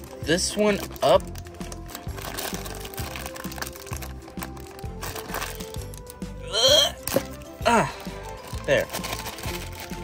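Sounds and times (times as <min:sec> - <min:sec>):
foil bag crinkling: 0:00.0 - 0:06.2, 0:08.2 - 0:10.0
background music with steady beat: 0:00.0 - 0:10.0.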